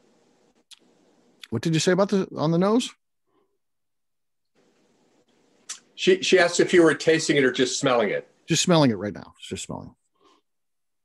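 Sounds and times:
open microphone hiss: 0:00.0 - 0:11.0.

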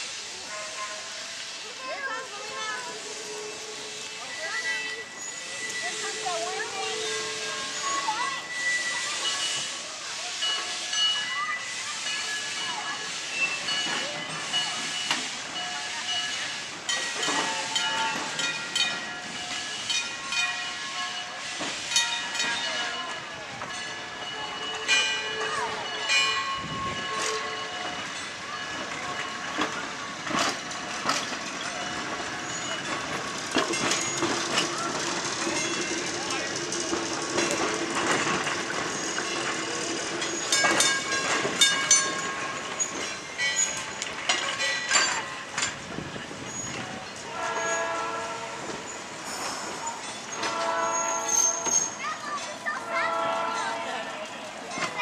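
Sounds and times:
streetcar hum: 0:00.0 - 0:55.0
trolley wheels clicking on track joints: 0:00.5 - 0:55.0.

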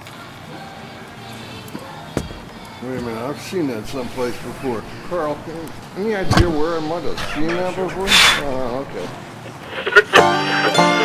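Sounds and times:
people talking indistinctly: 0:02.8 - 0:10.2.

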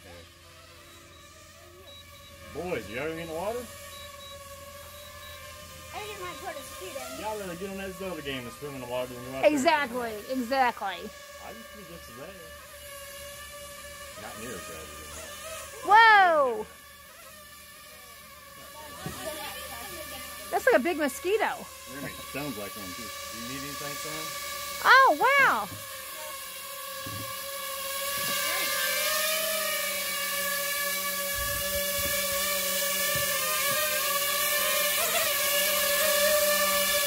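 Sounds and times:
drone propellers buzzing: 0:00.0 - 0:37.0.

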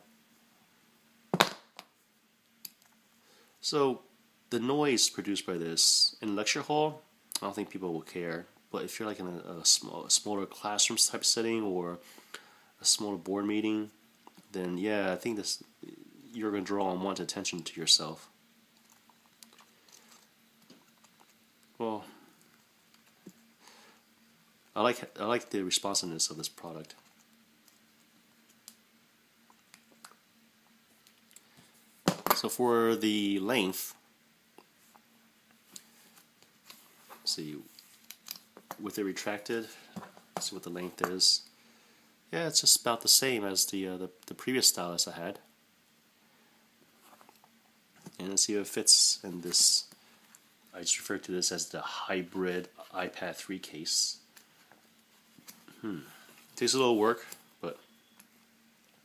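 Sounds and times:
faint steady hum: 0:00.0 - 0:59.0.

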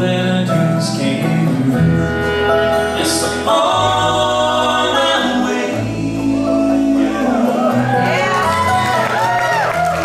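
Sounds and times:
voices singing harmony: 0:00.0 - 0:08.9
bluegrass band playing: 0:00.0 - 0:10.0.

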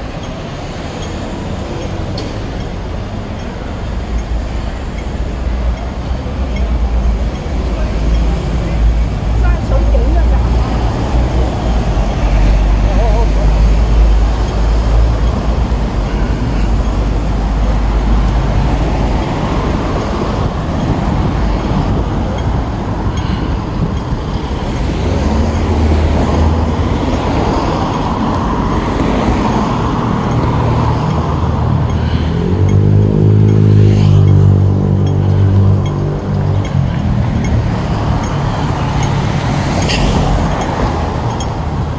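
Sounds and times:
city traffic: 0:00.0 - 0:41.9
passers-by talking: 0:05.4 - 0:20.5.

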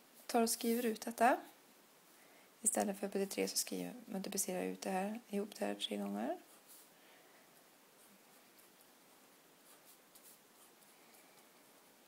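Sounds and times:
pen scratching on paper: 0:09.6 - 0:10.9.

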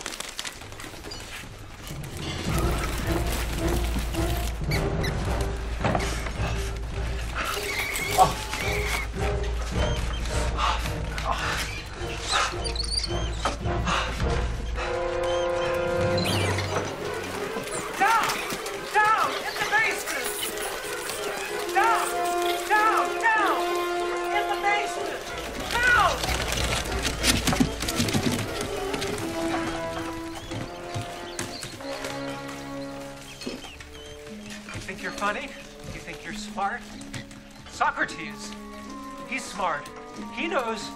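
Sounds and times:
scrabbling rustles: 0:00.0 - 0:13.7, 0:14.4 - 0:40.9
low droning music: 0:00.0 - 0:40.9
rats squeaking: 0:04.2 - 0:10.4, 0:11.3 - 0:13.7, 0:14.5 - 0:23.0, 0:24.6 - 0:40.9.

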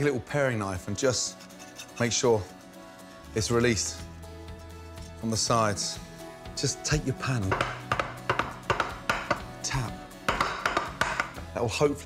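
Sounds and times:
background music: 0:00.0 - 0:12.0
frying pan knocking on wooden board: 0:07.5 - 0:09.5, 0:10.3 - 0:11.4.

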